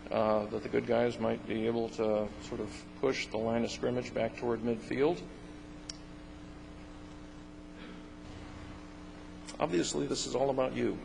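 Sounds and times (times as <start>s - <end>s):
man speaking: 0.0s - 5.4s, 9.5s - 11.0s
steady low hum: 0.0s - 11.0s.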